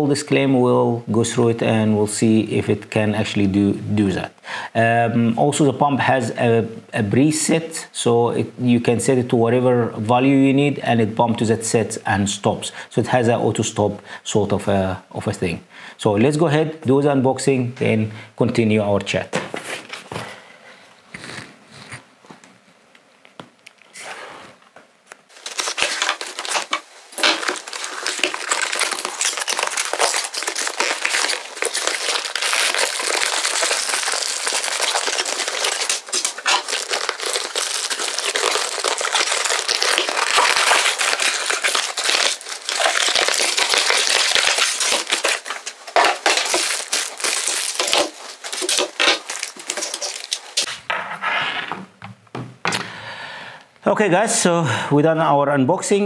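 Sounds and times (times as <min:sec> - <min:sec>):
packaging crinkling and rustling: 0:25.3 - 0:50.8.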